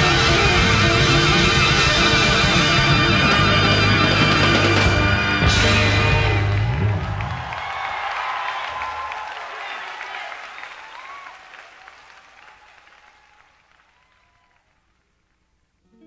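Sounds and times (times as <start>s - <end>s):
audience applauding and cheering: 4.7s - 15.5s
audience shouts: 5.9s - 14.8s.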